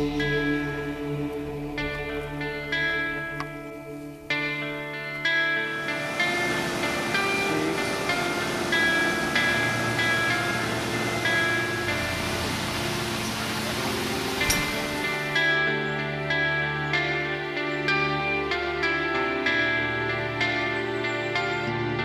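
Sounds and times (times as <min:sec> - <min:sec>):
plucked guitar-like music: 0:00.0 - 0:22.0
steady rushing noise: 0:05.6 - 0:15.7.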